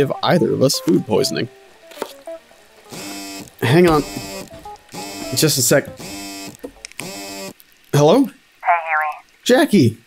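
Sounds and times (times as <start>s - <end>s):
phone ringing with buzzing tone: 2.9s - 7.6s.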